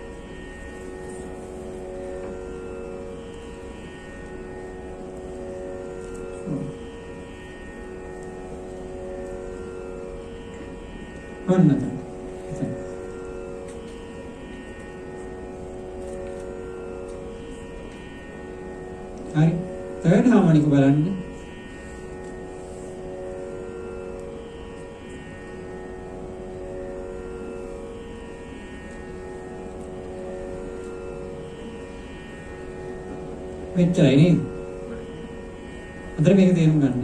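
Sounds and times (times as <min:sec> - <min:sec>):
sustained musical drone: 0:00.0 - 0:37.0.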